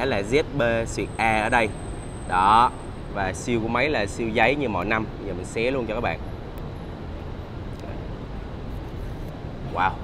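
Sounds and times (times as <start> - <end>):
traffic rumble: 0.0 - 10.0.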